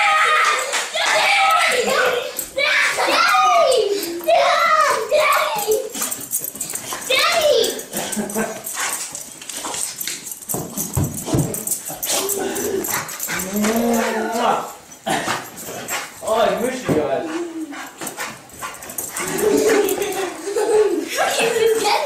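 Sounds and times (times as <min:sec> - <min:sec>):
dog whining and whimpering: 0:11.3 - 0:14.7.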